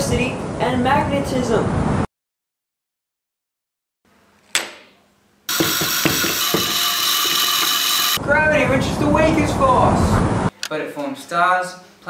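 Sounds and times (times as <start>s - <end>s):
hand-cranked generator whirring: 5.5s - 8.2s.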